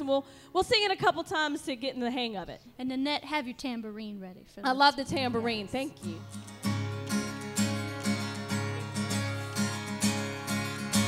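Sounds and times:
acoustic guitar strumming: 5.1 - 11.0.

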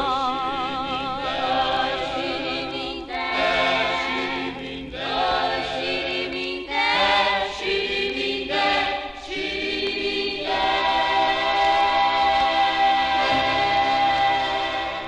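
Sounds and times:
vocal group singing in harmony: 0.0 - 15.0.

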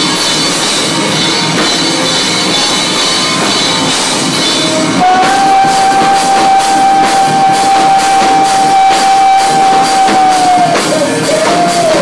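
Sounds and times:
live rock band playing: 0.0 - 12.0
held high note: 2.1 - 12.0.

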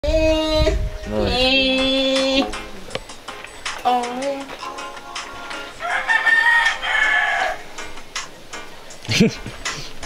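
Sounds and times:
rooster crowing: 5.8 - 7.7.

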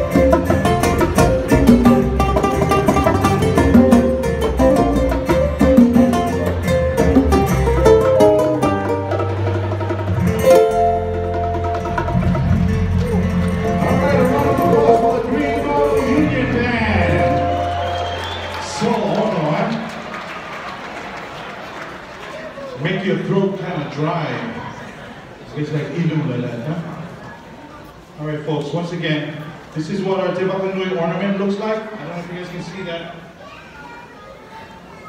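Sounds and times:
murmur of people in a hall: 0.0 - 35.0
man's voice: 13.6 - 17.6
faint background chatter: 24.5 - 28.5, 31.8 - 35.0.

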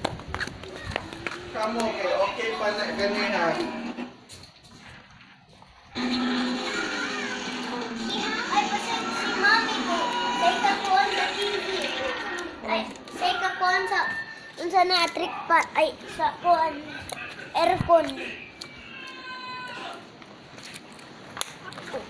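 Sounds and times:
music: 6.0 - 11.7
children's voices: 6.0 - 19.9.

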